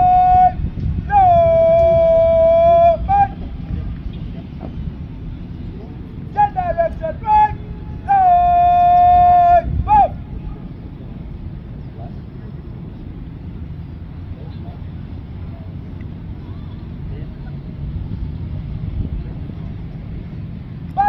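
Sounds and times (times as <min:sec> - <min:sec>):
wind rumble on microphone: 0:00.0 - 0:21.0
faint distant voices: 0:01.1 - 0:21.0.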